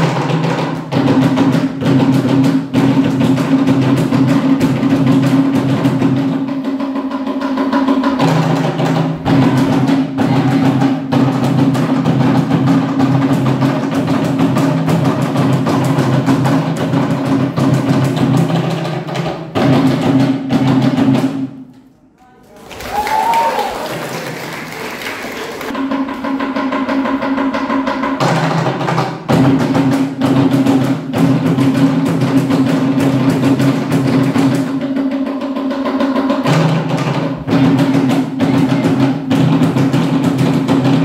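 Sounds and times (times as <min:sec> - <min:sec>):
fast drumming: 0:00.0 - 0:21.6, 0:22.7 - 0:41.0.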